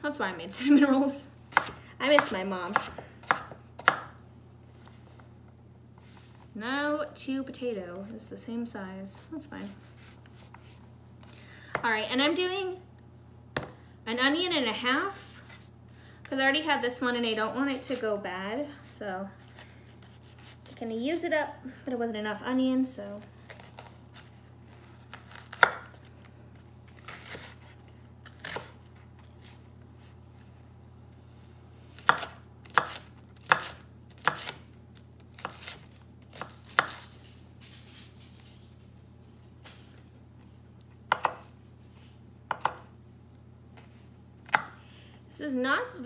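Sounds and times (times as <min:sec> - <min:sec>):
knife chopping on wooden board: 0:01.5 - 0:04.2, 0:25.2 - 0:26.0, 0:32.0 - 0:34.6, 0:35.3 - 0:37.0, 0:41.1 - 0:41.5, 0:42.5 - 0:42.9, 0:44.4 - 0:44.8.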